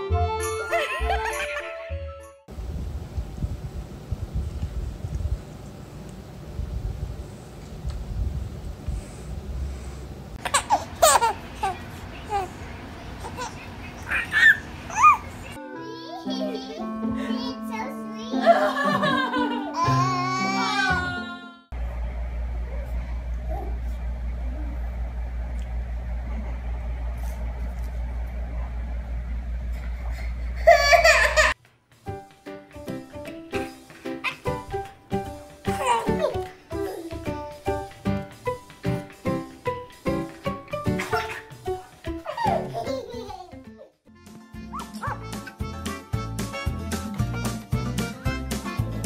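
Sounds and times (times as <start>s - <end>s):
steady low hum: 2.5s - 15.6s, 21.7s - 31.6s
baby laughing: 10.4s - 12.6s, 13.2s - 16.9s, 30.6s - 31.6s, 34.2s - 34.7s, 35.6s - 37.4s, 40.8s - 44.0s, 44.7s - 45.6s
small dog yipping: 44.7s - 45.2s.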